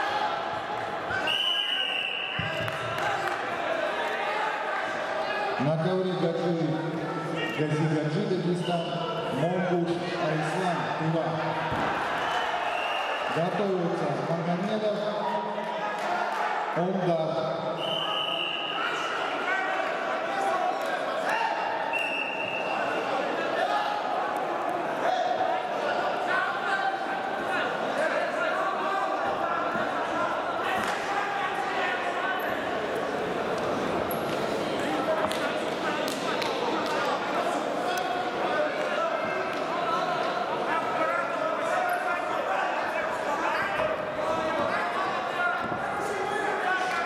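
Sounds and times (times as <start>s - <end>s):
crowd voices and shouts: 0.0s - 47.0s
referee's whistle: 1.1s - 2.6s, 12.2s - 13.3s, 17.8s - 19.1s, 21.9s - 23.0s.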